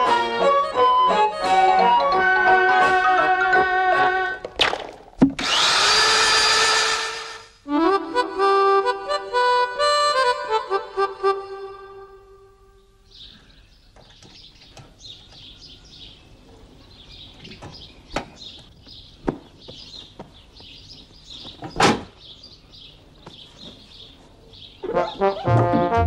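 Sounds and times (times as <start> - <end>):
accordion-like tune: 0.0 - 4.4, 6.6 - 12.8, 24.8 - 26.0
electric drill spinning: 5.4 - 7.5.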